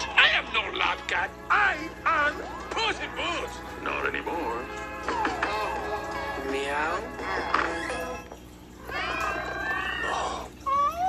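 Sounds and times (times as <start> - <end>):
cats meowing: 8.8 - 11.0.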